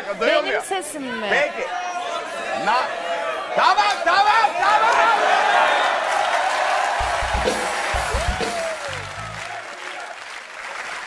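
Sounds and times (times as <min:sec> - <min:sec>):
studio audience applause: 0:04.6 - 0:11.0
low bass notes: 0:07.0 - 0:09.5.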